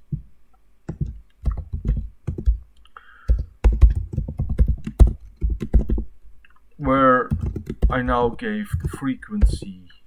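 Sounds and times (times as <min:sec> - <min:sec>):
typing on computer keyboard: 0:00.9 - 0:02.6, 0:03.2 - 0:06.1, 0:07.3 - 0:09.6.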